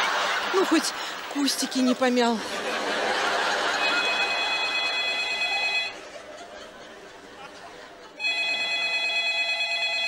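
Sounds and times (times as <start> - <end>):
audience noise: 0.0 - 9.1
telephone ringing: 3.2 - 6.0, 8.2 - 10.0.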